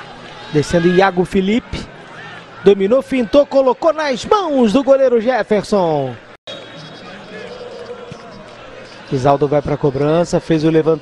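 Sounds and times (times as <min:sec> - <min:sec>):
stadium background ambience: 0:00.0 - 0:11.0.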